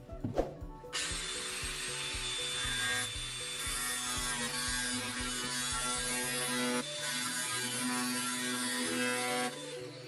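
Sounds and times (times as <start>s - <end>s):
angle grinder cutting plastic: 1.0s - 10.0s.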